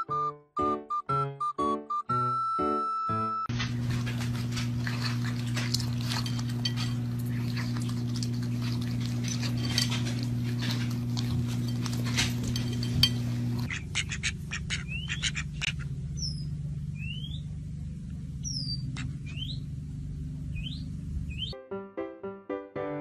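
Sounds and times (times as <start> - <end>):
steady low hum: 3.5 - 21.5
thin bird chirps: 14.8 - 17.5, 18.4 - 19.7, 20.5 - 21.6.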